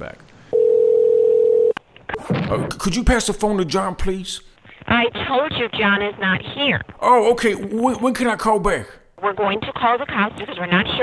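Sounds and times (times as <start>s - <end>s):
telephone ringback tone: 0.5s - 1.8s.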